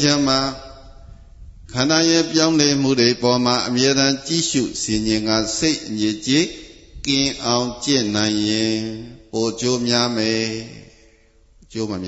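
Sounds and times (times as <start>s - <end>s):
man chanting on steady pitch: 0.0s - 12.0s
breath: 10.9s - 11.6s.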